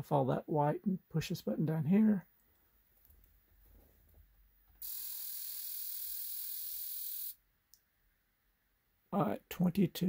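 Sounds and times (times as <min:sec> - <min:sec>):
fuel injector hissing buzz: 0:04.8 - 0:07.4.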